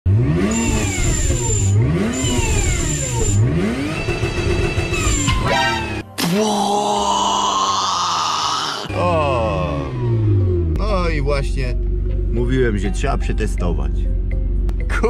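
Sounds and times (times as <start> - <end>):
car engine revving: 0.1 - 6.0, 8.9 - 15.0
held musical tone: 8.9 - 15.0.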